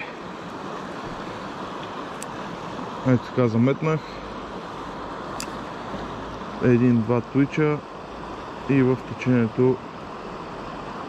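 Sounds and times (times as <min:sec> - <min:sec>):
river rushing over stones: 0:00.0 - 0:11.0.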